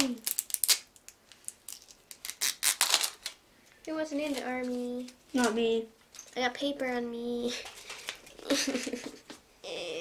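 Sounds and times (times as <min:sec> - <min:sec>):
paper tearing and rustling: 0:02.2 - 0:03.3.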